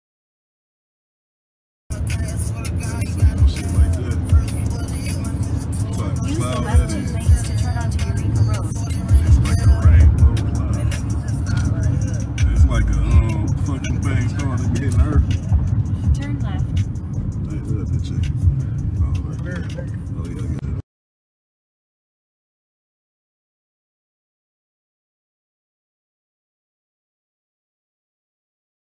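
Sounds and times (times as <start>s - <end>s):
car road and engine rumble: 1.9s - 20.8s.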